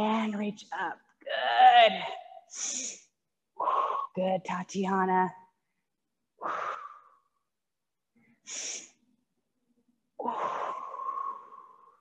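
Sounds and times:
woman breathing: 2.5s - 4.2s, 5.6s - 7.4s, 8.1s - 9.0s, 10.2s - 12.0s.

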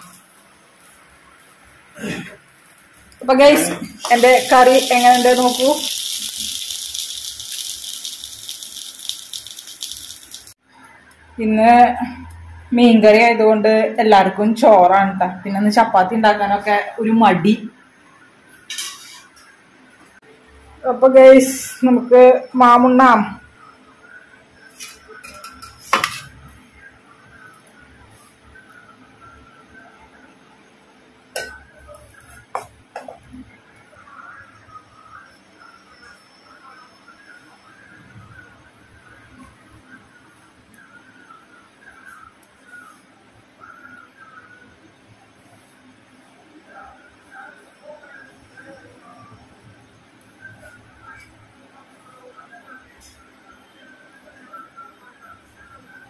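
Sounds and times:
curry sizzling and bubbling: 3.9s - 10.6s.

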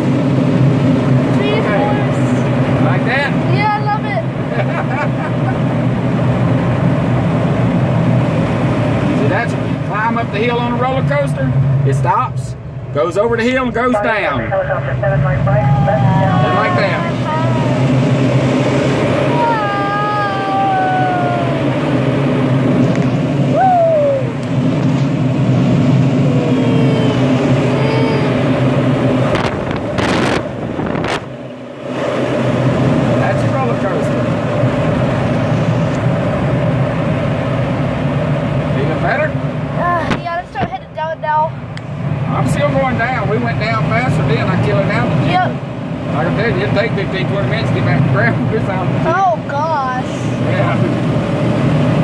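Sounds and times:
airflow rushing around cockpit: 0.0s - 52.0s
low hum: 0.0s - 52.0s.

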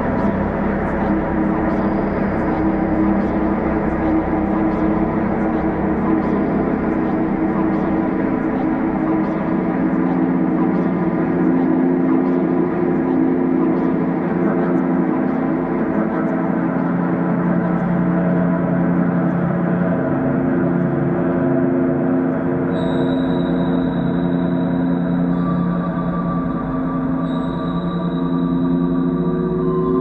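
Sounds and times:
synthesizer drone: 0.0s - 30.0s.

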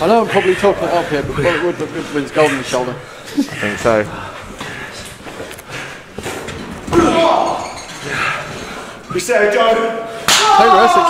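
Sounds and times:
low voices in a hall: 0.0s - 11.0s
person shouting: 10.4s - 11.0s.

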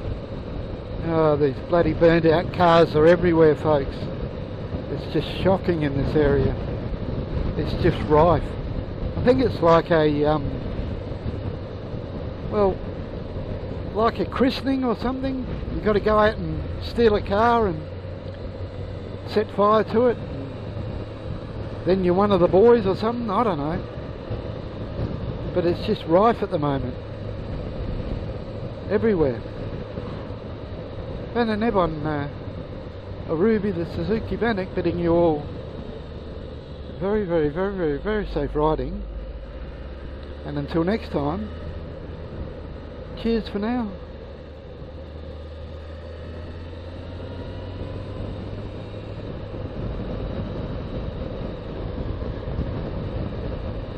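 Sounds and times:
motorcycle engine cruising: 0.0s - 53.9s
wind rushing over microphone: 0.0s - 53.9s.

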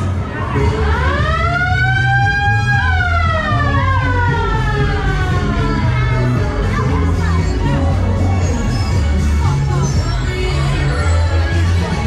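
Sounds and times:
fairground music with heavy bass: 0.0s - 12.0s
siren-like wailing tone: 0.8s - 6.4s.

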